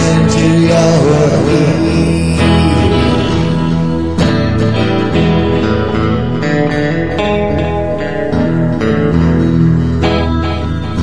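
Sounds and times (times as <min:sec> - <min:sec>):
guitar playing chords: 0:00.0 - 0:11.0.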